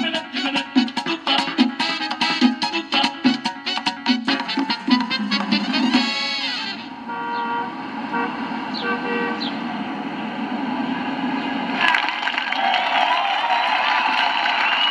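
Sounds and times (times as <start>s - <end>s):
street traffic noise: 0.0s - 14.9s
car horn toots: 3.2s - 9.5s.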